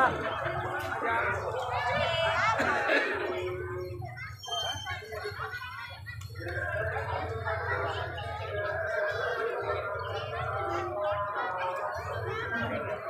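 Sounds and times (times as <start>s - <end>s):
several voices: 0.0s - 13.0s.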